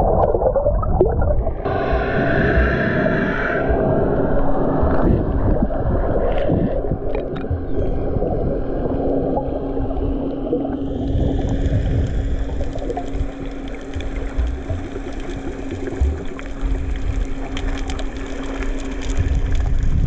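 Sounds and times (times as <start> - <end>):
muffled water rushing and sloshing: 0.0 - 20.0
steady low hum: 0.0 - 20.0.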